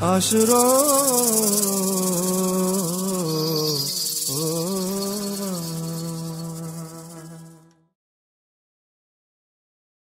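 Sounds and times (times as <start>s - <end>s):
man singing long notes: 0.0s - 7.8s
high rattling hiss: 0.1s - 7.6s.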